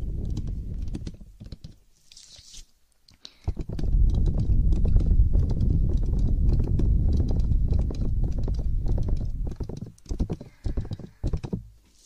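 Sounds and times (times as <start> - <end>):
rapid tapping close to microphone: 0.0 - 1.8, 3.4 - 11.8.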